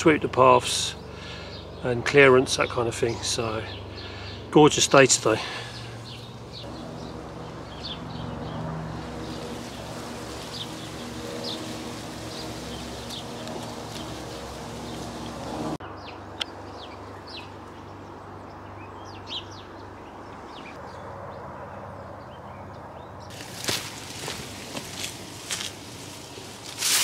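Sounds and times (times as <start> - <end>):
low mechanical hum: 0.0 - 20.7
small birds chirping: 0.0 - 21.1.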